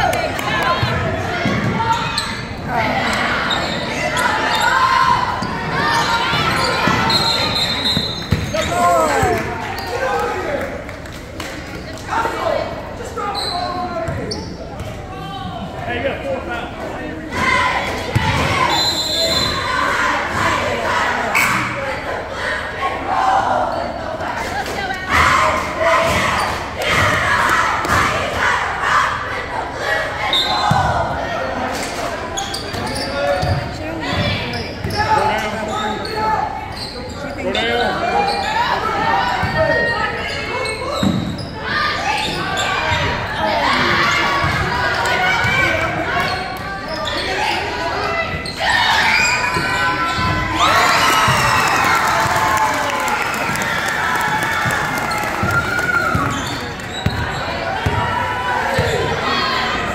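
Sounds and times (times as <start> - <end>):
crowd voices and shouting: 0.0 - 59.9
basketball bouncing on hardwood floor: 8.3 - 8.5.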